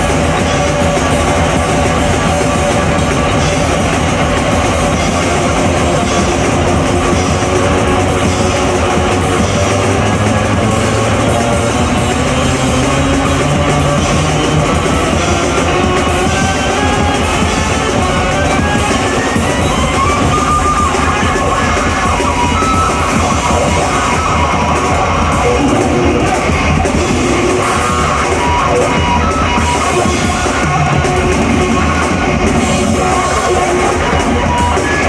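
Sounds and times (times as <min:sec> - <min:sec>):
distorted electric bass: 0:00.0 - 0:35.0
fast drumming on a drum kit: 0:00.0 - 0:35.0
high line climbing in pitch: 0:00.0 - 0:35.0.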